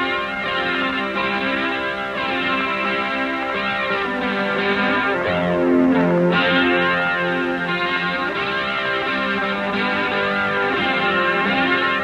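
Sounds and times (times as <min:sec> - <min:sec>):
distorted electric guitar rock: 0:00.0 - 0:12.0.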